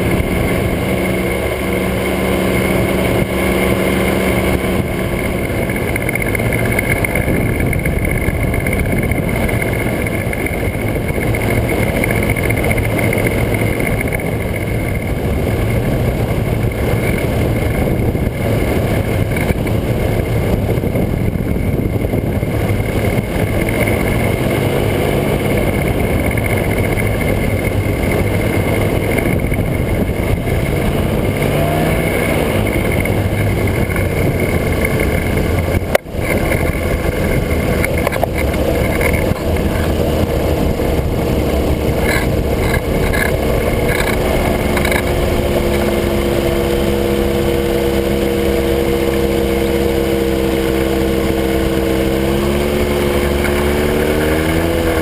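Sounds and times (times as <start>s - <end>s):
small aircraft engine and propeller: 0.0s - 55.0s
wind rushing past microphone: 0.0s - 55.0s.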